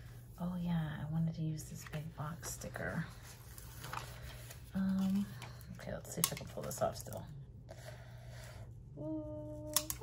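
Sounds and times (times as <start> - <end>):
sticker backing paper crackle: 1.7 - 7.2
woman humming: 8.9 - 10.0.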